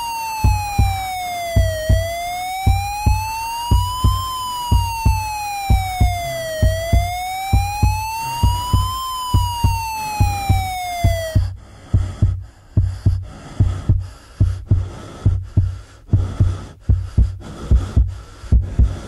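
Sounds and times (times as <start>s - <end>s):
siren wail in music: 0.0s - 11.6s
pounding double-thump beat: 0.0s - 19.0s.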